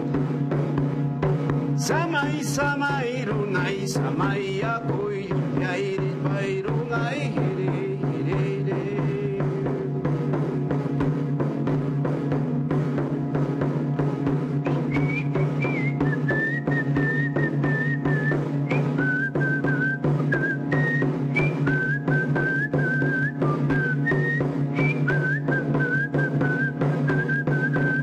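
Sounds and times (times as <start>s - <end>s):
man whistling a melody: 14.7s - 28.0s.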